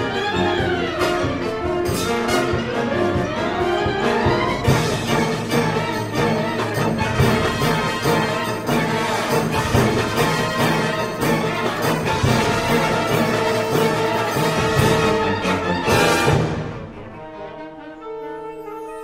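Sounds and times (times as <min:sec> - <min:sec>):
concert band playing: 0:00.0 - 0:17.1
percussion strikes: 0:00.0 - 0:17.1.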